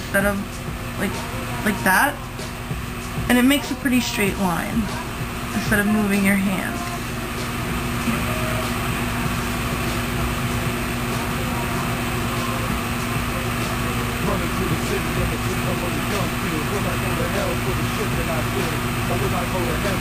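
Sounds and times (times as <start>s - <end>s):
constant low tone: 0.0s - 20.0s
low rumble: 0.0s - 20.0s.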